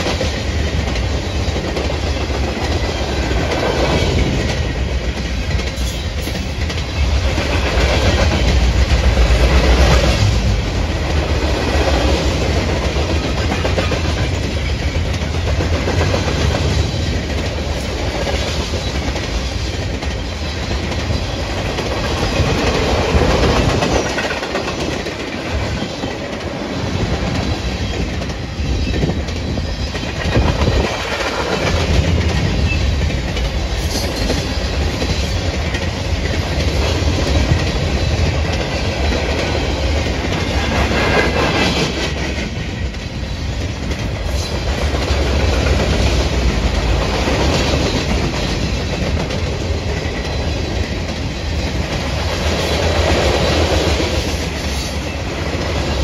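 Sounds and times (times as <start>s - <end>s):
freight train cars rolling past: 0.0s - 56.0s.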